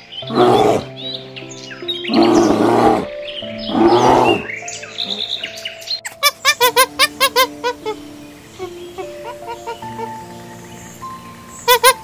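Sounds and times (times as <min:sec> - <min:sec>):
background music with held notes: 0:00.0 - 0:12.0
macaque high calls: 0:06.0 - 0:10.2, 0:11.6 - 0:12.0.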